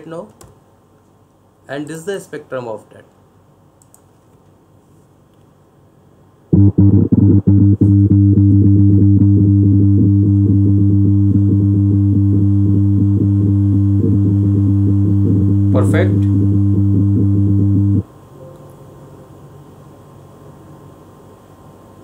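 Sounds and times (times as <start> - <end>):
loud electronic hum: 6.5 - 20.0.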